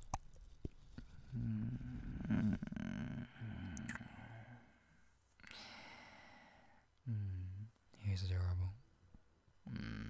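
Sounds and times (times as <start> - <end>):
man humming: 1.3 - 4.0, 7.1 - 7.7, 9.7 - 10.0.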